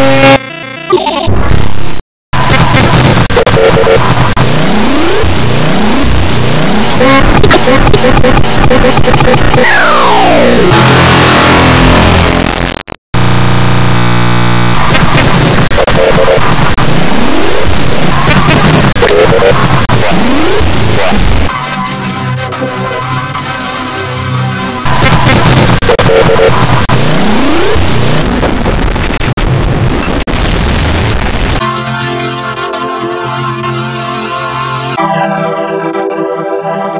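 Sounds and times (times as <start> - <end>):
distorted synthesizer drone: 0.0 - 36.9
noisy clatter: 10.7 - 23.5, 24.2 - 31.7.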